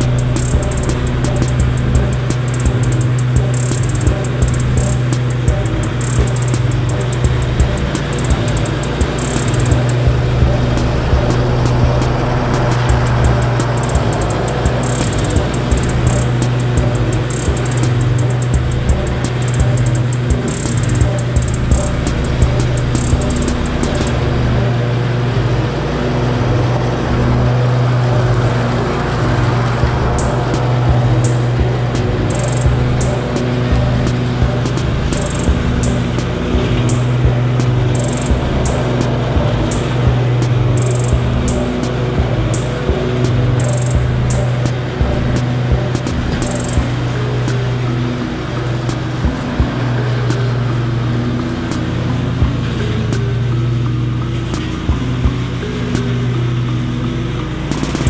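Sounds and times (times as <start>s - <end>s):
background music with regular beat: 0.0s - 58.0s
riding mower engine cutting grass: 0.0s - 58.0s
stepping melody: 0.0s - 58.0s.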